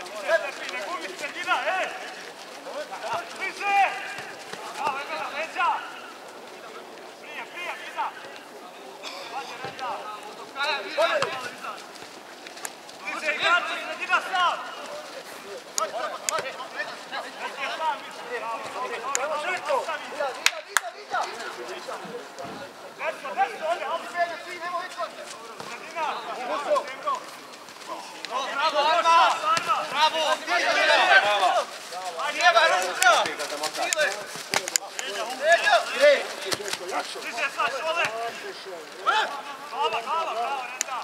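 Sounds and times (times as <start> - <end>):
men talking and calling out: 0.0 - 41.0.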